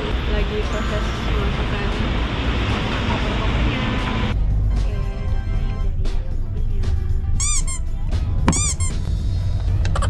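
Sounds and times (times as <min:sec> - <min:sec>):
car rumbling in motion: 0:00.0 - 0:06.8
background music: 0:00.0 - 0:10.0
squeaky cartoon sound effects: 0:07.4 - 0:07.8.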